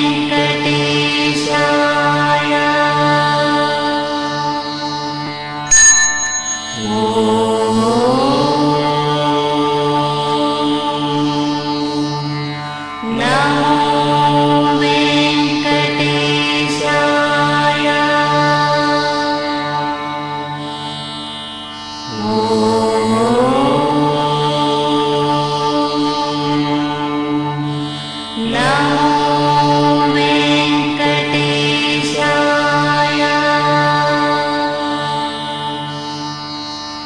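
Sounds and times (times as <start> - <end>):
devotional chanting: 0.0 - 37.0
low drone: 5.7 - 9.8.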